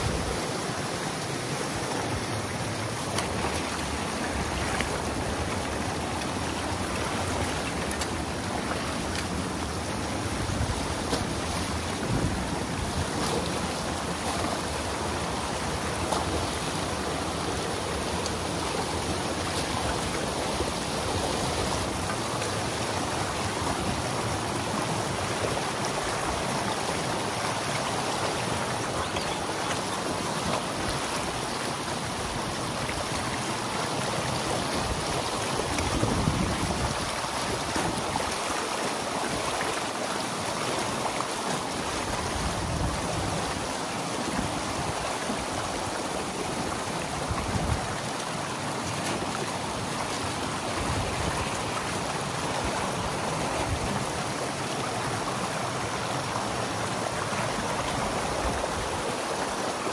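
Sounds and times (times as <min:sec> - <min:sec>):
water rushing and splashing: 0:00.0 - 0:59.9.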